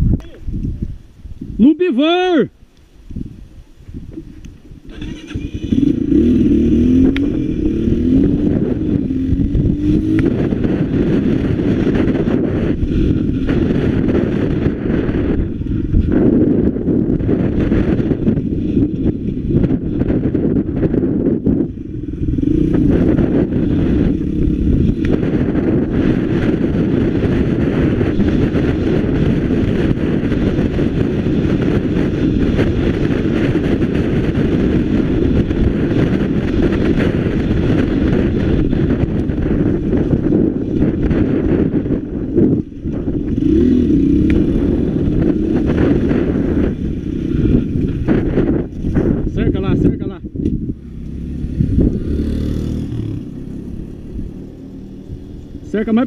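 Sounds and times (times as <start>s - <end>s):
motorcycle engine running: 4.1s - 56.0s.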